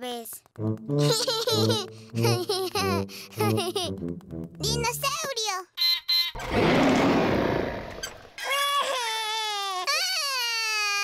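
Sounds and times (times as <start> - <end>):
cartoon robot dinosaur roar: 6.4 - 8.1
small child crying: 8.4 - 11.0.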